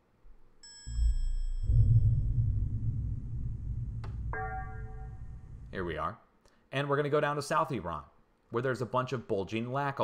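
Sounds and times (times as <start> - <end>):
bell-like chime: 0.6 - 1.8, 4.3 - 5.5
deep low rumble: 0.9 - 5.8.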